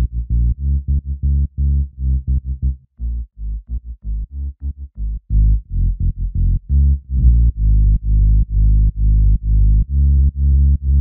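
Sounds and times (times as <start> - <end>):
distorted synth bass: 0.0 - 11.0.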